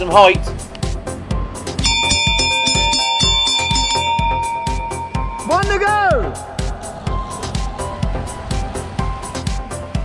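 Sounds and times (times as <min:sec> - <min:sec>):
large bell ringing: 0:01.8 - 0:06.4.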